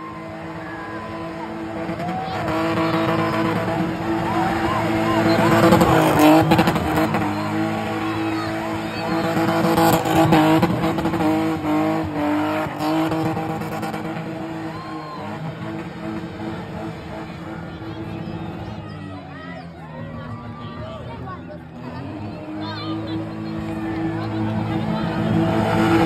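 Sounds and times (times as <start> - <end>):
car engine at high revs: 0.0 - 19.0, 21.1 - 26.0
crowd shouting: 0.0 - 26.0
tyres screeching on tarmac: 0.0 - 26.0.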